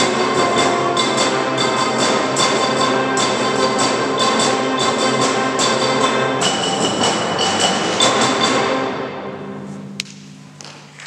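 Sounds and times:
rapid percussion accents: 0.0 - 9.0
concert band playing: 0.0 - 11.0.

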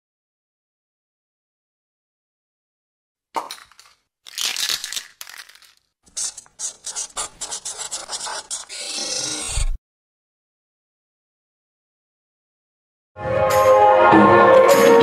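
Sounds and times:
quick clicks and scraping: 3.4 - 9.8.

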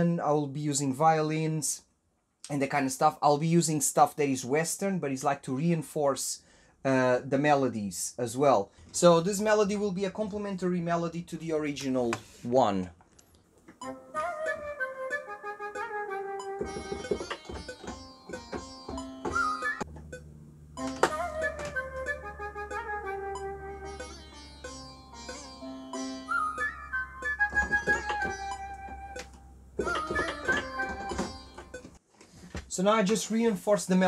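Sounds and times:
sitar melody with bent notes: 13.8 - 32.0.

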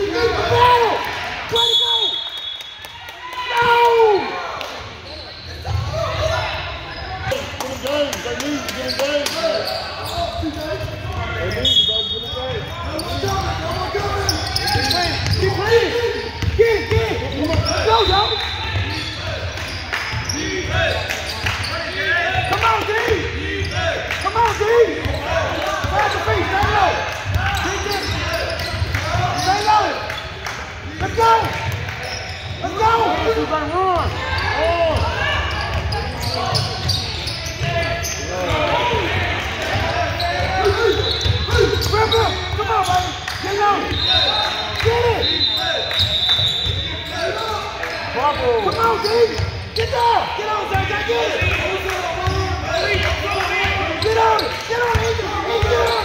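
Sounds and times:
people talking and shouting: 0.0 - 56.0.

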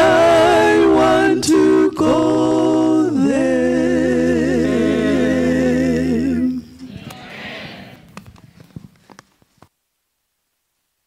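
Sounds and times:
vocal quartet singing a hymn: 0.0 - 8.2
microphone handling clicks: 8.0 - 9.7.

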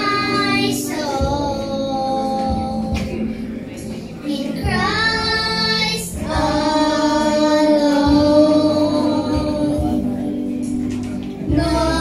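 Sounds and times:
child and woman singing: 0.0 - 3.0, 4.2 - 10.0, 11.5 - 12.0.

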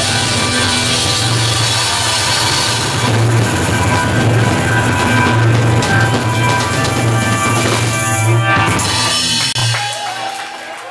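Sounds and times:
live rock band playing: 0.0 - 10.1.

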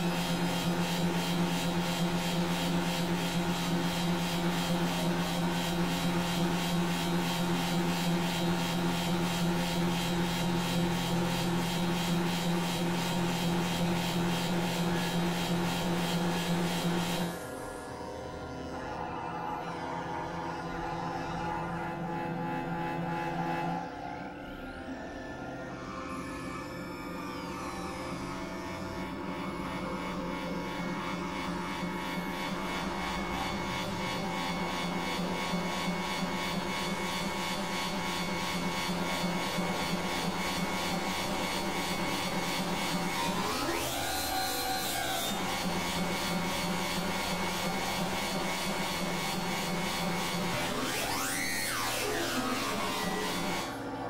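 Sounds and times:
synthesizer drone: 0.0 - 54.0.

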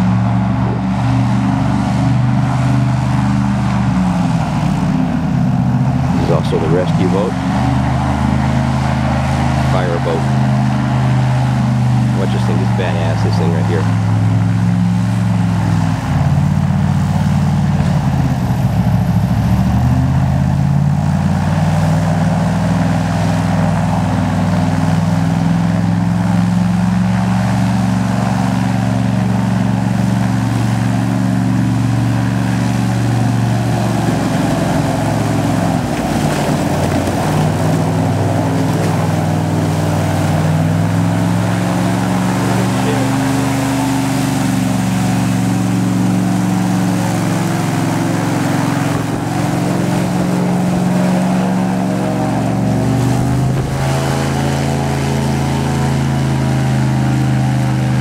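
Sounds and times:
airboat engine and propeller: 0.0 - 58.0.

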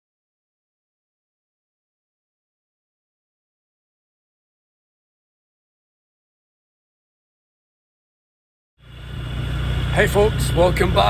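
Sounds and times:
motorbike engine idling: 8.8 - 11.0.

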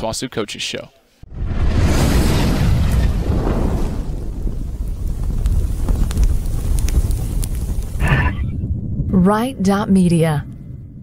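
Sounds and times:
fire crackles: 1.3 - 11.0
fire roaring: 1.3 - 11.0.

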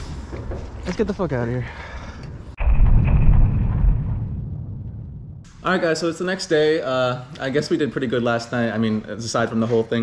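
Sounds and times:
deep cinematic boom with rumbling tail: 2.6 - 5.5.

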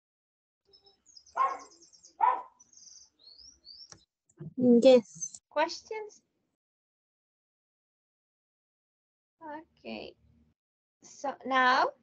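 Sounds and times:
small bird chirping and trilling: 0.7 - 4.1, 4.9 - 5.4.

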